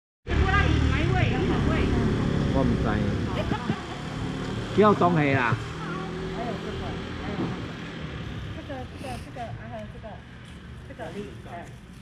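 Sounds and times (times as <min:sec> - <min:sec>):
people talking: 0:00.3 - 0:03.9, 0:08.6 - 0:10.2.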